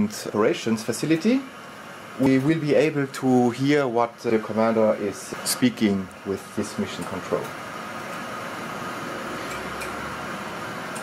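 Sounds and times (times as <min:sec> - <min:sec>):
radio static hiss: 0:00.0 - 0:09.5.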